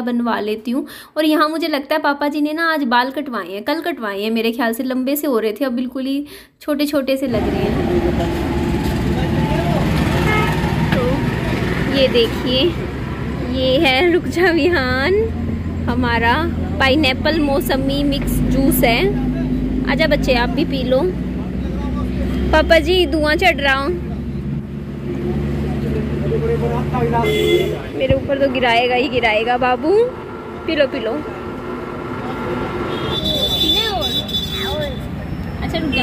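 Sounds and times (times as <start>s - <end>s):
people talking indistinctly: 0.0s - 36.0s
road traffic rumble: 7.3s - 36.0s.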